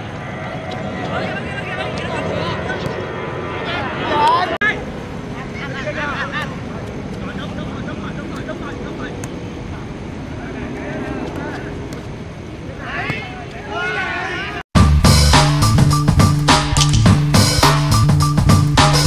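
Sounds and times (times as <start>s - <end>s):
steady background noise: 0.0s - 14.6s
footballers shouting: 12.6s - 14.6s.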